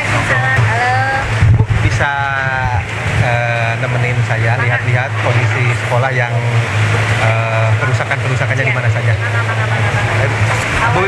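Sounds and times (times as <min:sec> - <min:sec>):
background voices: 0:00.0 - 0:11.0
low engine hum: 0:00.0 - 0:11.0.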